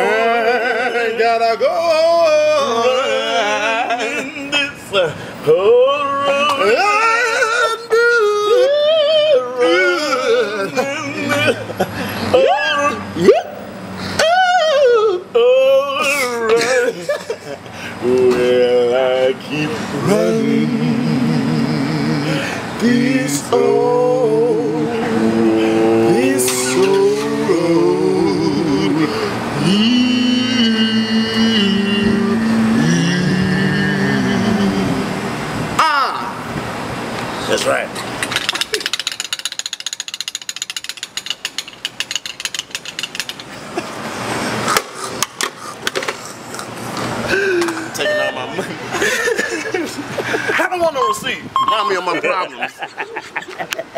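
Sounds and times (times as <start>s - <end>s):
men singing in harmony: 0.0s - 17.0s, 17.9s - 35.7s
fuel pump nozzle clicking: 38.2s - 43.5s.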